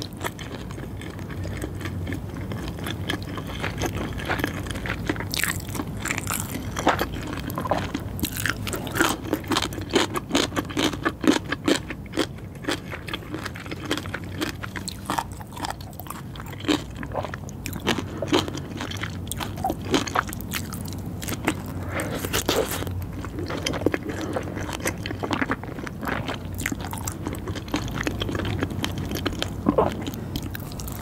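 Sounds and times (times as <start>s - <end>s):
chewing and wet mouth sounds: 0.0s - 31.0s.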